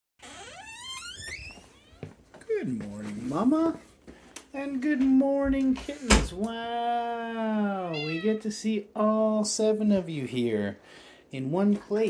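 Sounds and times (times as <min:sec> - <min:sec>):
door hinge squeaking: 0:00.2 - 0:02.1, 0:07.9 - 0:08.3.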